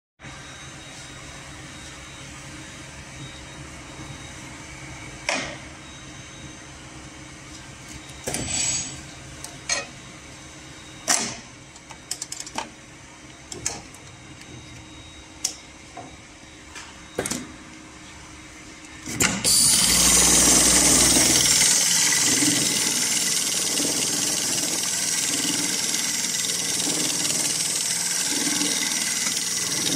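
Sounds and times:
sewing machine idling hum: 19.5 - 29.9.

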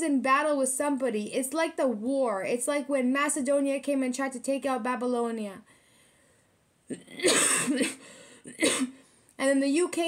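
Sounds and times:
woman coughing: 6.9 - 9.0.

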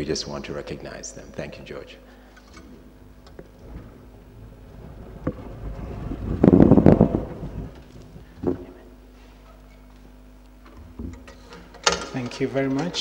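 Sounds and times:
muffled rumble on microphone: 3.1 - 9.2
microphone handling knocks: 4.8 - 8.9.

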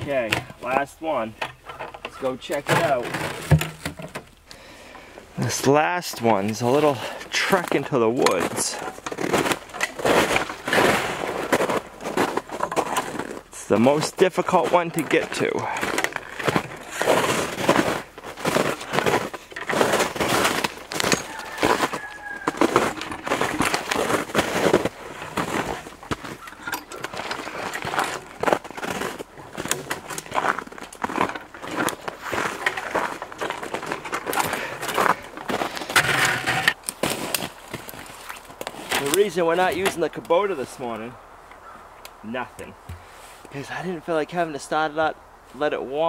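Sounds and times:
footsteps crunching through snow: 6.6 - 39.5.

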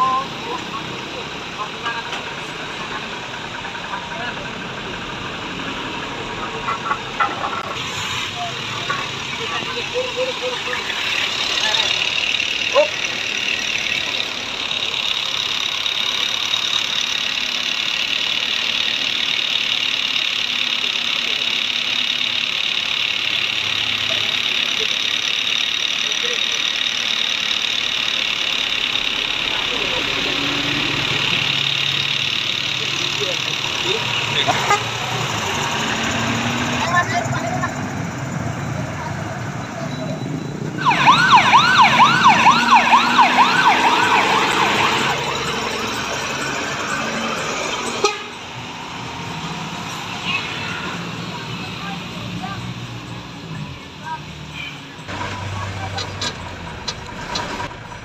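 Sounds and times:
people talking: 0.0 - 17.4, 20.2 - 48.0, 50.1 - 57.1
truck engine idling: 0.0 - 58.0.

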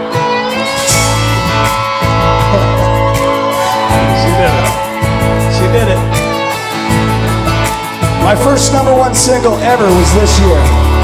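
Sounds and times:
guitars strummed: 0.0 - 11.0
deep bass line: 0.6 - 11.0.

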